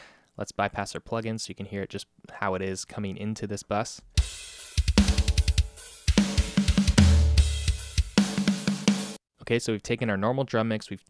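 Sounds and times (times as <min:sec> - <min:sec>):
snare drum: 0:04.2 - 0:09.2.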